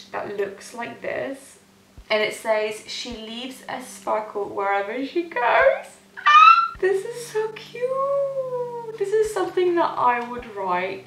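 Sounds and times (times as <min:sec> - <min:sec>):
speech: 0:00.0 - 0:06.0, 0:06.8 - 0:11.0
woman's held vocal note: 0:06.2 - 0:06.8.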